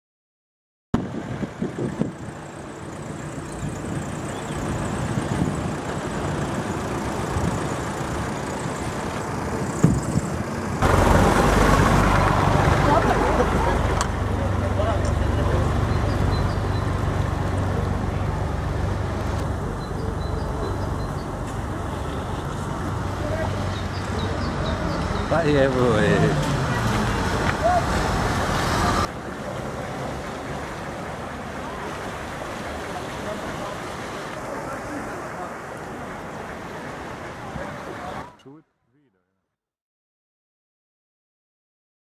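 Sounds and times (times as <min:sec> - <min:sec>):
car engine and tyre rumble: 0:01.0 - 0:38.4.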